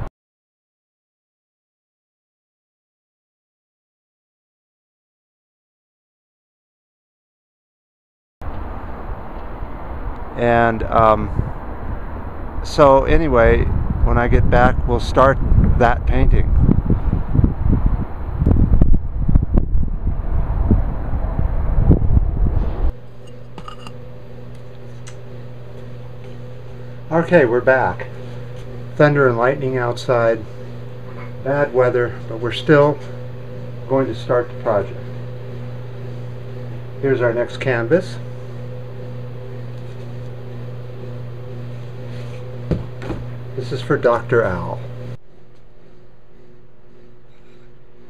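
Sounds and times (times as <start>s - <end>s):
low machine hum: 8.4s - 48.0s
wind buffeting microphone: 10.8s - 22.9s
held tones: 22.9s - 48.0s
short knock: 42.7s - 43.3s.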